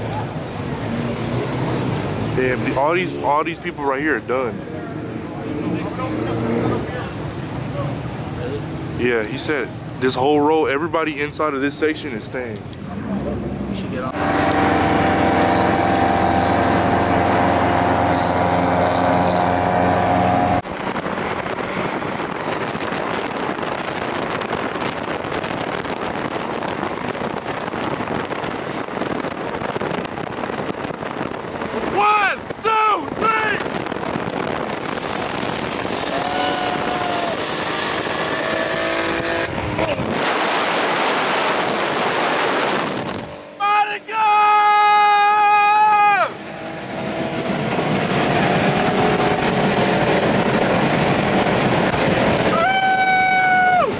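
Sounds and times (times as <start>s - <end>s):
car engine drone: 0.0s - 53.9s
road and wind noise: 0.0s - 53.9s.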